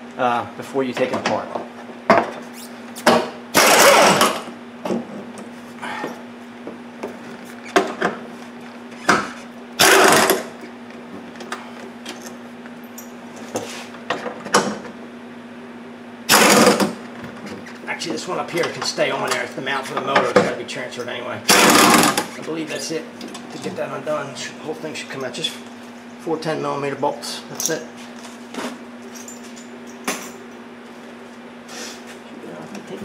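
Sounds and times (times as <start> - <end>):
air tool running: 3.5 - 4.5, 9.8 - 10.6, 16.3 - 17.0, 21.5 - 22.4.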